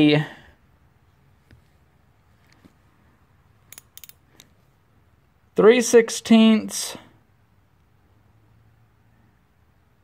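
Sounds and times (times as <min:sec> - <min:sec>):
metal socket clicking: 0:03.7 - 0:04.5.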